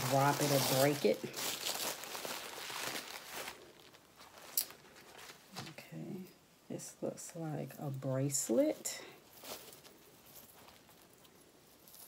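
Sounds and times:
sharp paper crinkle: 0.0s - 5.5s
tissue paper rustling: 0.0s - 5.7s, 8.7s - 12.0s.

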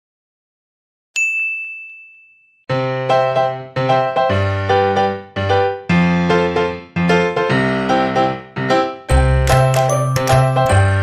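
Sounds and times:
high bell ding: 1.2s - 2.7s.

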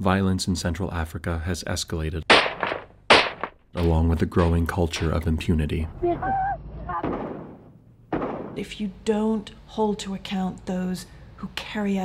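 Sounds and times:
person shouting: 6.0s - 7.1s
echoing bang: 7.0s - 8.6s.

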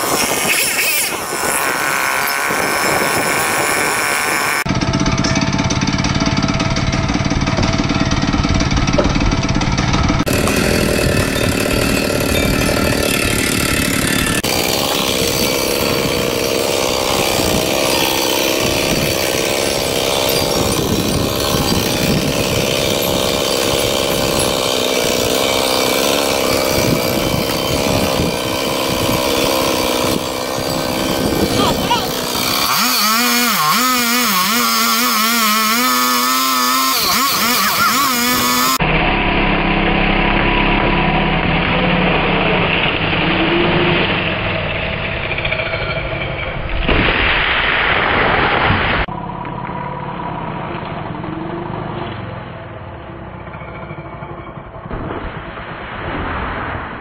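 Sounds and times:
chainsaw cutting wood: 0.0s - 49.1s.

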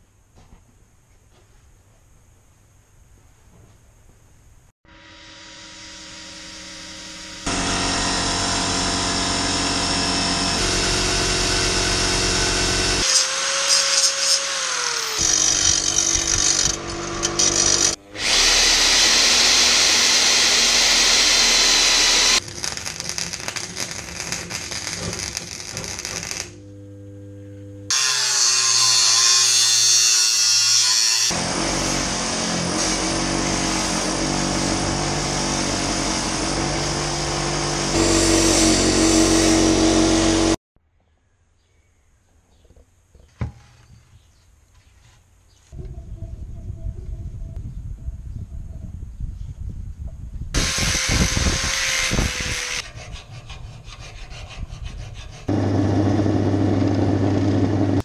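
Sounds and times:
angle grinder cutting steel: 4.9s - 26.7s, 27.9s - 40.6s, 50.6s - 58.0s
bench grinder grinding metal: 4.9s - 26.8s, 27.9s - 40.6s, 50.6s - 58.0s.

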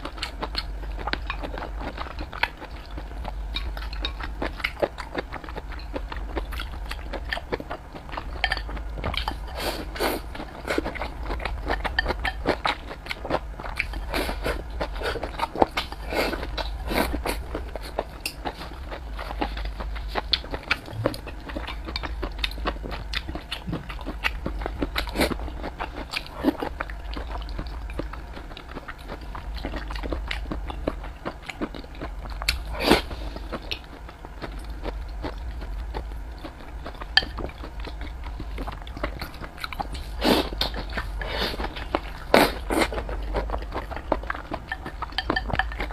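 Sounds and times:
chewing food close up: 0.0s - 45.9s
steady low hum: 0.0s - 45.9s.

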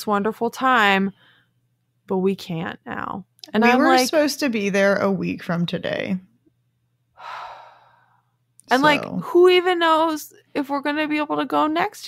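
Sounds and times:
woman speaking: 2.1s - 4.7s, 8.7s - 12.0s
sigh: 7.2s - 8.2s.

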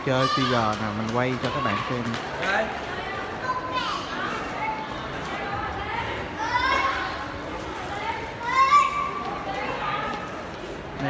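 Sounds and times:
busy indoor shop noise: 0.0s - 11.0s.

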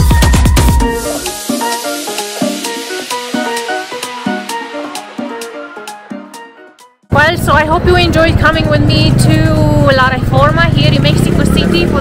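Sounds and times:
street noise rumble: 7.1s - 12.0s
woman talking: 7.1s - 12.0s.

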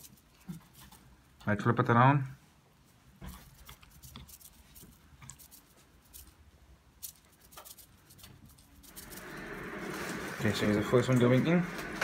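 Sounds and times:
gas stove hissing: 8.9s - 12.0s.

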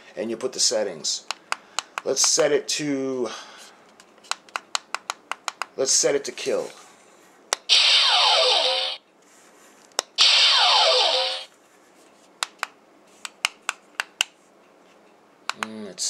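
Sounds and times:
electronic zap with falling tones: 7.7s - 9.0s, 10.2s - 11.5s.

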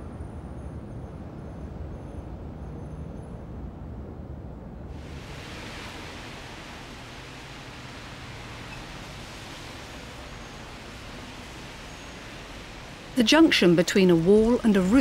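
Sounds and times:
even hiss: 5.0s - 15.0s.

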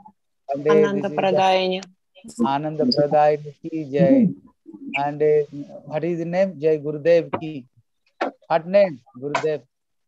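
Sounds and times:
man calling out: 0.6s - 1.4s.

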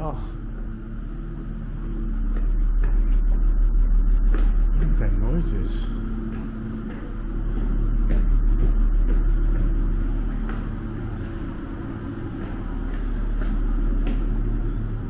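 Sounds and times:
faint footsteps: 0.0s - 15.0s
steady mechanical hum: 0.0s - 15.0s.

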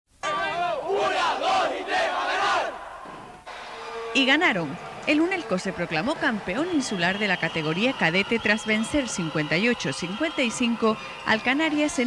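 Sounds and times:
crowd shouting and cheering: 0.2s - 12.0s.

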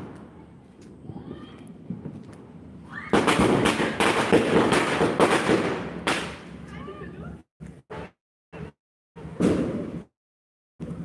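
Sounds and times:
firecrackers crackling: 0.0s - 6.7s.

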